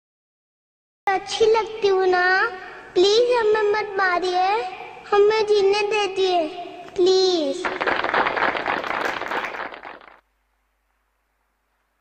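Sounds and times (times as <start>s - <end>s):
audience applauding: 7.6s - 10.2s.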